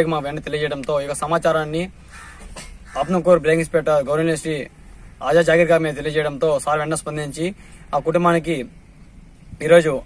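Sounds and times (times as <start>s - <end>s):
man speaking: 0.0s - 2.0s, 2.9s - 8.8s, 9.6s - 10.0s
faint background noise: 0.0s - 10.0s.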